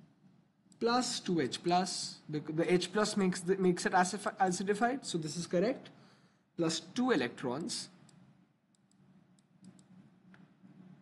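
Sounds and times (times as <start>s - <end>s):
stylus clicking on tablet: 8.0s - 10.5s.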